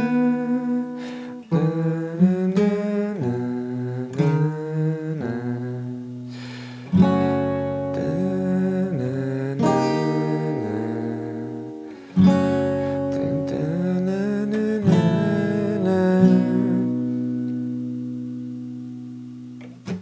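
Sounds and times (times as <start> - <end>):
person humming: 0.0 - 17.3
acoustic guitar chords ringing: 0.0 - 20.0.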